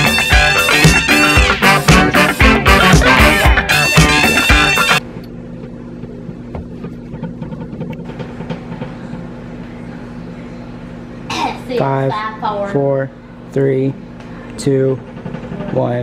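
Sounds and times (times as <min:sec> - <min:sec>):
background music: 0:00.0 - 0:05.0
microwave oven humming: 0:00.0 - 0:16.0.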